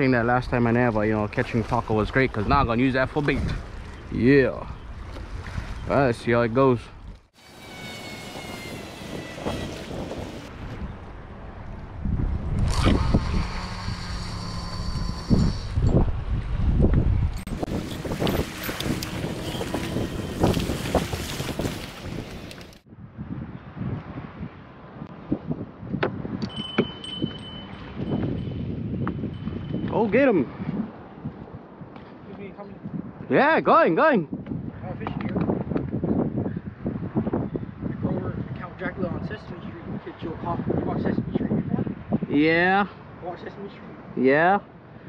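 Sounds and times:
wind buffeting microphone: 0.0 - 44.1
fishing rod and reel handling: 17.4 - 22.8
small bell ringing: 26.5 - 30.2.

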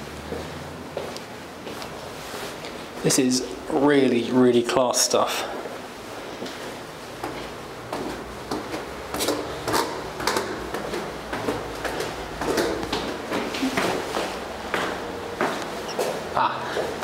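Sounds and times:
footsteps down a staircase: 0.2 - 2.6, 6.4 - 17.0.

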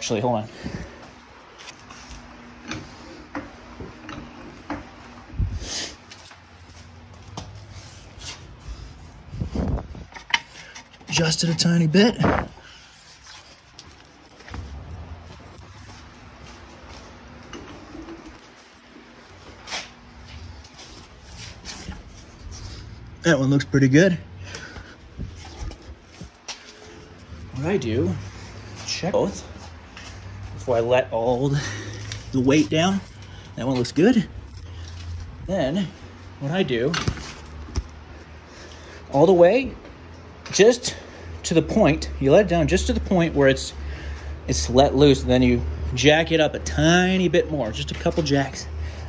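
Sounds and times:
footsteps rumbling: 0.0 - 49.0.

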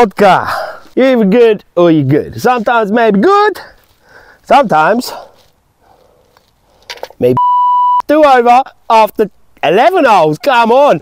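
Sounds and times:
person speaking: 0.0 - 5.4, 7.0 - 11.0
electronic censor bleep: 7.4 - 8.1.

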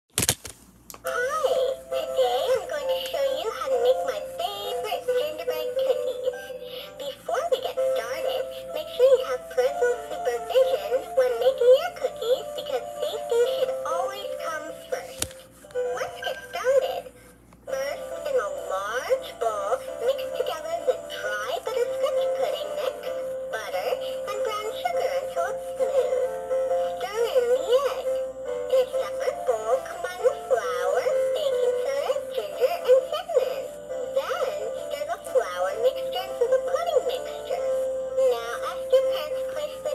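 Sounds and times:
toy singing electronic song: 1.1 - 15.2, 15.8 - 17.1, 17.7 - 39.9.

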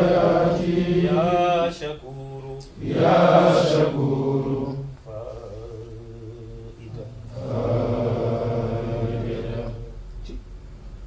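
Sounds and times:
man chanting devotional verses: 1.0 - 2.8, 4.7 - 7.4.

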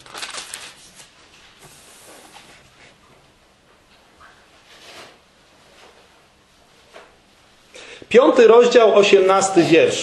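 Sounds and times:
thin pages rustling: 0.0 - 2.6
background hiss: 0.2 - 10.0.

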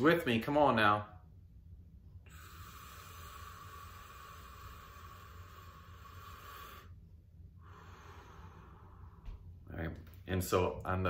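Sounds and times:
man breathing deeply: 2.2 - 9.7.

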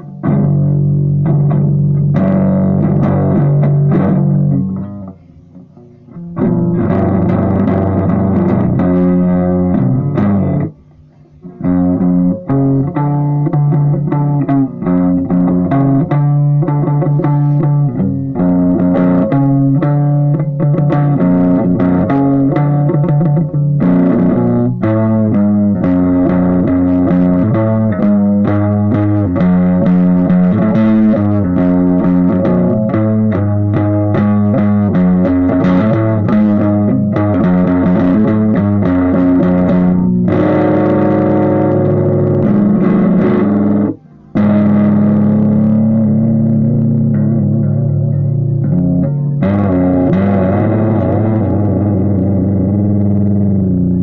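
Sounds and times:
electric guitar playing: 0.0 - 54.0.

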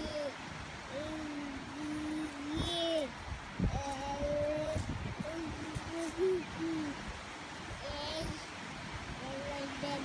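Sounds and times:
baby cooing: 0.9 - 3.1, 3.8 - 7.0.

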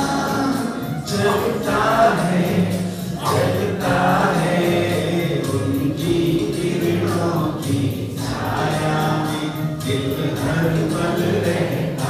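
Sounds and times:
group singing with accompaniment: 0.0 - 12.0.

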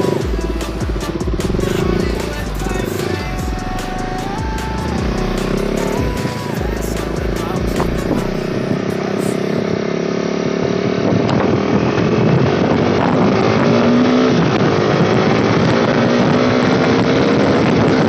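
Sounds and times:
motorcycle engine accelerating: 0.0 - 18.0
wind rushing over microphone: 10.6 - 18.0.

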